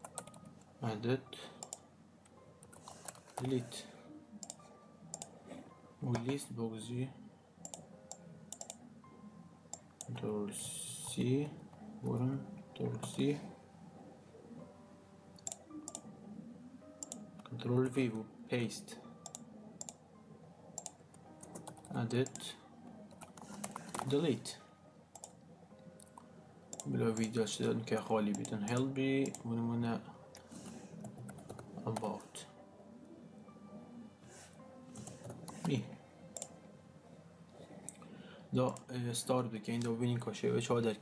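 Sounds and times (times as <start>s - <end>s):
computer mouse clicks: 1.6s - 1.8s, 2.6s - 3.5s, 4.4s - 5.3s, 7.6s - 8.8s, 15.4s - 16.1s, 17.0s - 17.5s, 19.2s - 20.0s, 20.8s - 22.4s, 23.1s - 24.2s, 25.1s - 25.4s, 35.0s - 36.6s.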